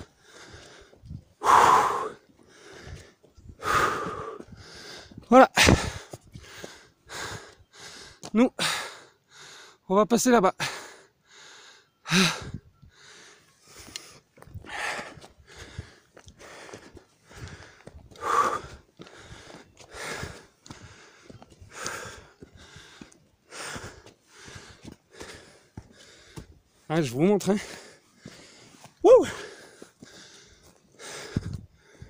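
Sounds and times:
heavy rapid breathing: 0:00.0 - 0:09.9, 0:10.6 - 0:32.0.

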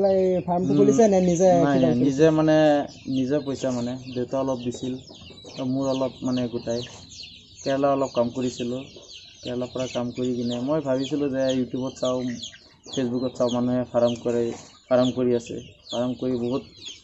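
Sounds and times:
man's voice: 0:00.0 - 0:06.9, 0:07.7 - 0:16.8
chickens clucking and chirping: 0:00.0 - 0:17.0.

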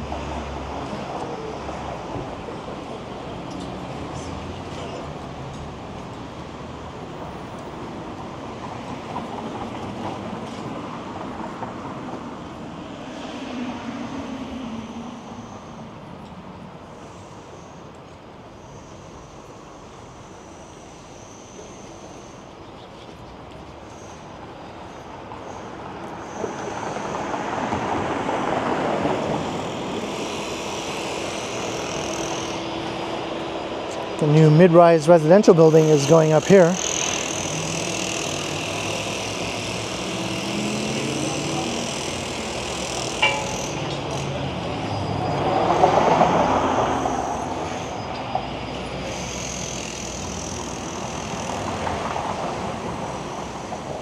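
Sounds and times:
traffic noise: 0:00.0 - 0:54.0
vehicle passing close: 0:32.5 - 0:47.9.

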